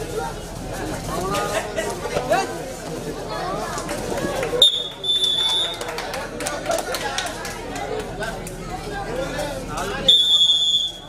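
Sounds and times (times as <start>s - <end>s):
crowd chatter: 0.0s - 11.0s
referee's whistle blasts: 4.6s - 5.8s, 10.1s - 11.0s.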